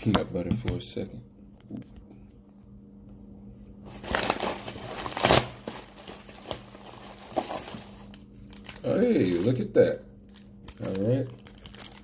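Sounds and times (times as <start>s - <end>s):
plastic packing crinkling: 3.9s - 12.0s.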